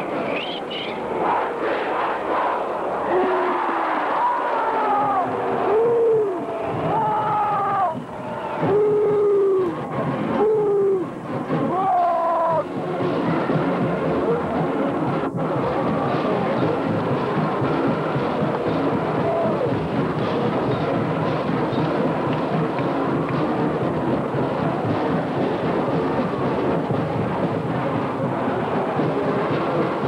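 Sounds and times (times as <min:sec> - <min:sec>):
distant marching band playing: 0:00.0 - 0:30.0
stadium crowd noise: 0:00.0 - 0:30.0.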